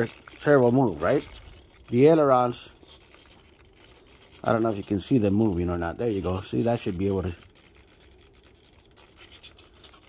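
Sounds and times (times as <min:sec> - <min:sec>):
scratching and rubbing handling noise: 0:00.0 - 0:10.0.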